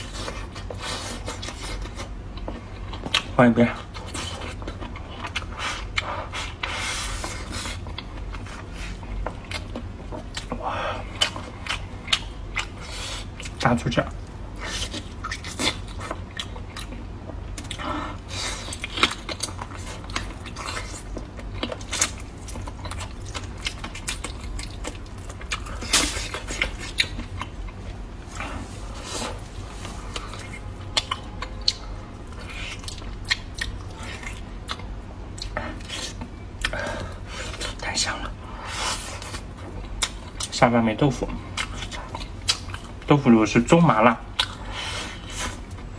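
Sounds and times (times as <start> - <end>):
wet chewing and smacking: 0.0 - 43.2, 44.2 - 45.9.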